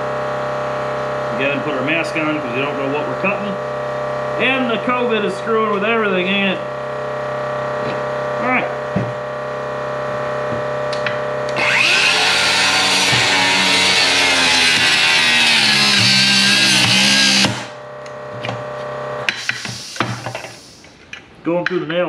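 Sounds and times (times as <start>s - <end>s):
steady hum: 0.0s - 21.5s
circular saw cutting: 11.5s - 17.8s, 19.3s - 20.8s.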